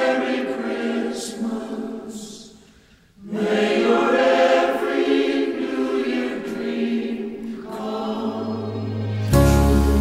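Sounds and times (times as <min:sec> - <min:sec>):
choir singing long chords: 0:00.0 - 0:02.6, 0:03.2 - 0:10.0.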